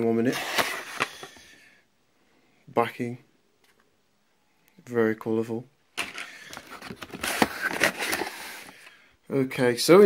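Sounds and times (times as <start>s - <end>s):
cardboard box rustling: 6.5s - 8.8s.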